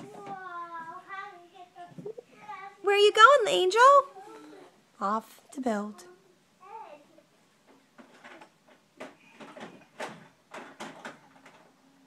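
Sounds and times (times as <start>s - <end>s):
toddler singing: 0.0s - 2.8s.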